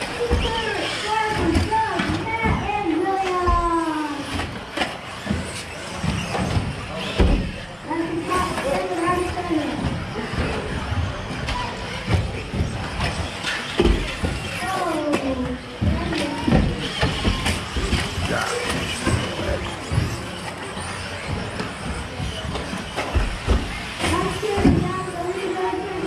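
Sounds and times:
people talking: 0:00.0 - 0:04.4, 0:06.8 - 0:26.0
electric rc cars racing: 0:00.0 - 0:26.0
rc cars knocking on track: 0:00.0 - 0:26.0.

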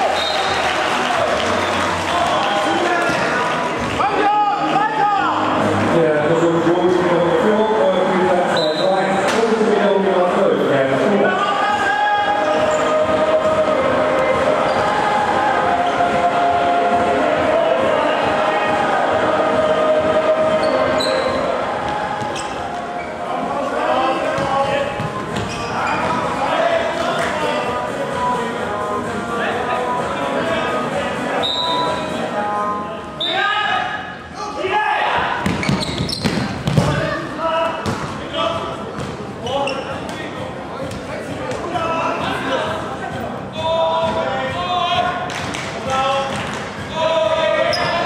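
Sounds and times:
crowd noise in hall: 0:00.0 - 0:48.0
players shouting: 0:11.2 - 0:27.4
ball kicks and bounces: 0:35.4 - 0:37.0.

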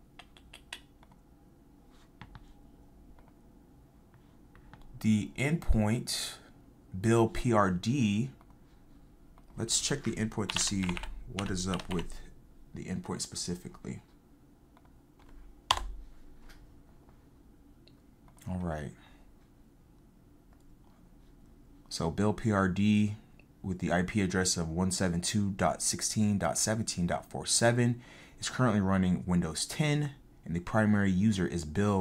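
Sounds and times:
keyboard keystrokes: 0:10.4 - 0:12.1, 0:15.2 - 0:16.0.

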